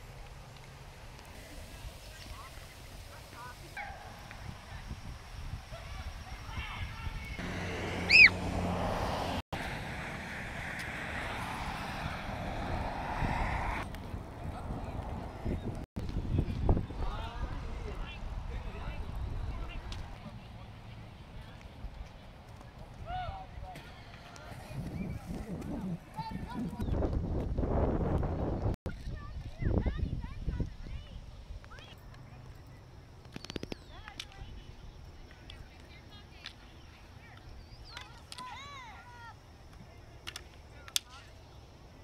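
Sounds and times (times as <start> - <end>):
wind buffeting microphone: 4.2 - 7.5, 8.7 - 20.2, 24.4 - 31.7
distant voices calling out: 5.8 - 15.7
low rumble of passing traffic: 7.0 - 24.8
high-pitched squeal: 7.4 - 13.9.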